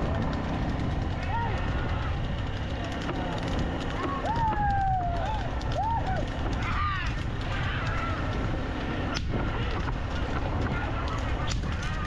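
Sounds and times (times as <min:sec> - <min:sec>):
vehicles rumbling on dirt track: 0:00.0 - 0:12.0.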